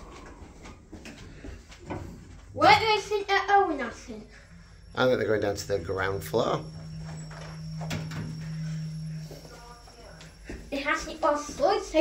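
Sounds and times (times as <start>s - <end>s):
lift humming: 3.0s - 12.0s.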